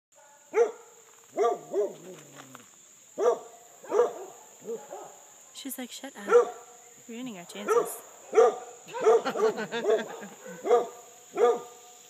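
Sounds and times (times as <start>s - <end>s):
dog barking: 0.2s - 2.1s, 3.2s - 5.3s, 6.3s - 6.7s, 7.6s - 11.8s.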